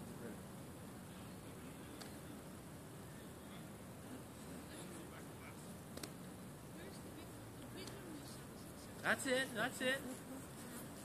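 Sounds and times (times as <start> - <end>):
faint distant voices: 0.0 - 11.0
outdoor background hiss: 0.0 - 11.0.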